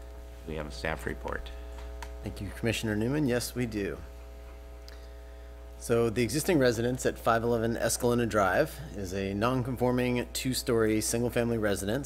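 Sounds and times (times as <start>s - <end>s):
electrical mains hum: 0.0s - 12.0s
man speaking: 0.4s - 4.1s, 5.8s - 12.0s.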